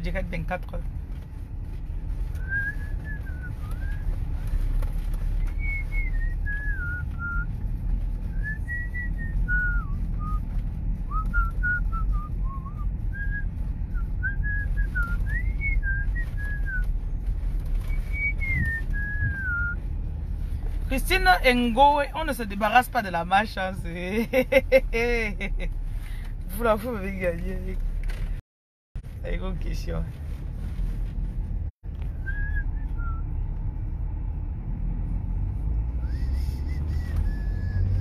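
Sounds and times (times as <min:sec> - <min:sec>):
car driving rumble: 0:00.0 - 0:28.4, 0:29.0 - 0:38.0
person whistling a tune: 0:17.8 - 0:19.8, 0:32.2 - 0:33.2, 0:36.0 - 0:38.0.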